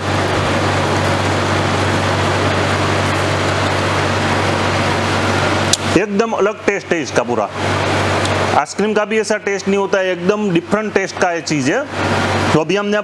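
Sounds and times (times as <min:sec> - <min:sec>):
machine hum and hiss: 0:00.0 - 0:13.0.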